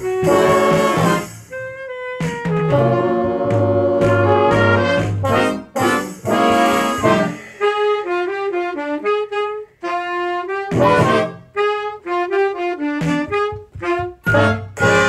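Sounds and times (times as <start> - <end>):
small jazz band playing: 0.0 - 15.0.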